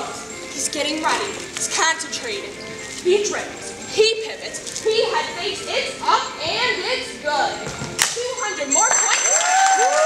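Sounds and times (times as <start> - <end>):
voices echoing in a large hall: 0.0 - 10.0.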